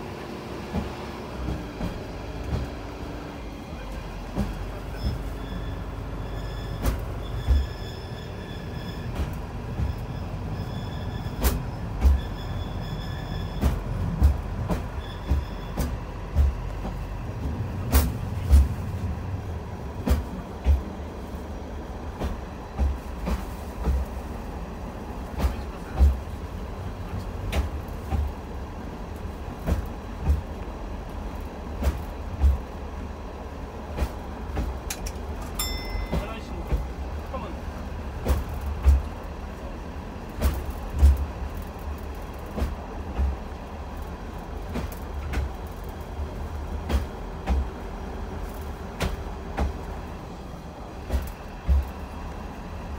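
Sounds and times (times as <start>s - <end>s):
wheels clacking over rail joints: 0.0s - 21.4s, 22.0s - 52.9s
rail vehicle engine rumble: 0.0s - 52.9s.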